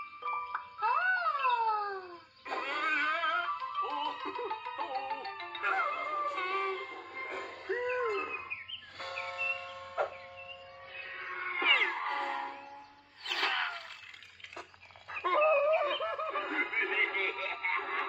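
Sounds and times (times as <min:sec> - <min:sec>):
cartoon music: 0:00.2 - 0:10.2, 0:10.9 - 0:14.0
high-pitched squeaky voices: 0:00.8 - 0:10.2, 0:11.0 - 0:17.3.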